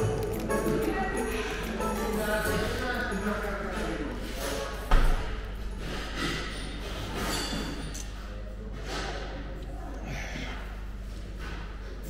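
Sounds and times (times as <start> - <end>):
faint murmur of customers: 0.0 - 12.0.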